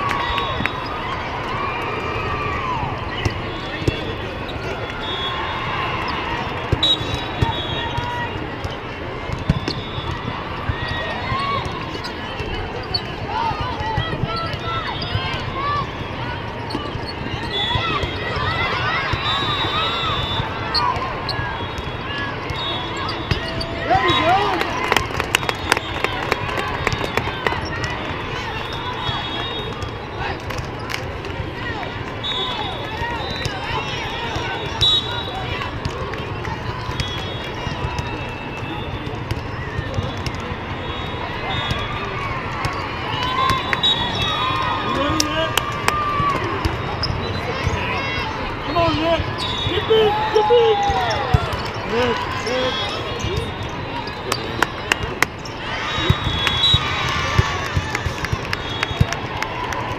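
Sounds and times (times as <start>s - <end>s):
hubbub of voices: 0.0s - 59.9s
sneakers squeaking on court: 10.6s - 26.2s, 41.1s - 45.5s, 46.2s - 49.9s, 50.8s - 59.1s.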